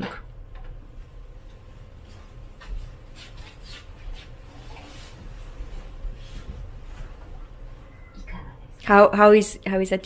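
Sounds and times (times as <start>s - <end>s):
faint hissy rustles: 0.9s - 8.0s.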